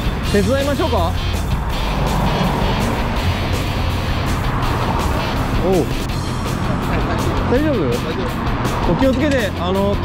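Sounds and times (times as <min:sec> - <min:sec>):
background music: 0:00.0 - 0:10.0
traffic noise: 0:00.0 - 0:10.0.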